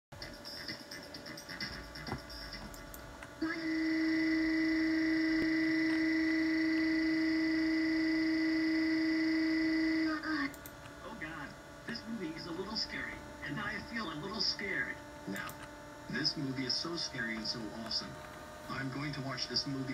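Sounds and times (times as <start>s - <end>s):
mixed soundtrack: 0.1s - 10.2s.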